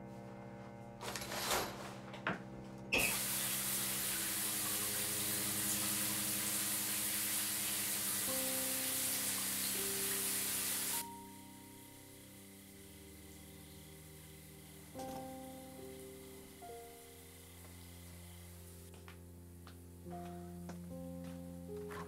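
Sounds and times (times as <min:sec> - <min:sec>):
soft sustained music: 0:00.0 - 0:22.0
shower water spraying: 0:02.9 - 0:18.9.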